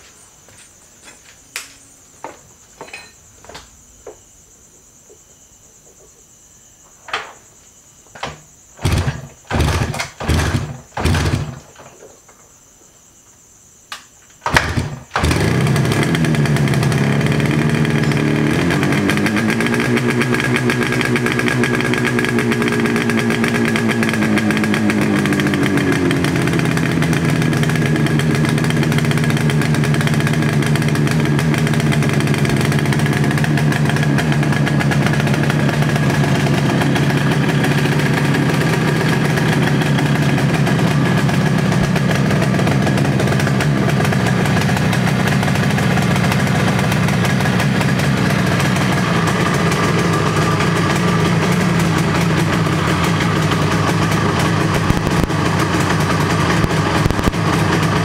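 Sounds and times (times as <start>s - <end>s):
two-stroke motorcycle engine revving: 8.8s - 11.7s, 14.4s - 58.0s.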